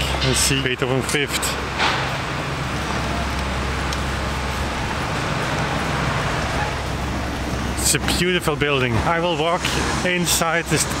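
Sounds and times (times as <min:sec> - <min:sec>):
low traffic rumble: 0:00.0 - 0:11.0.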